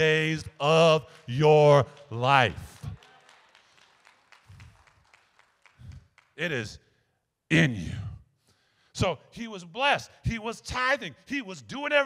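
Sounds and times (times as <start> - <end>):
scattered handclaps: 1.0 - 6.4.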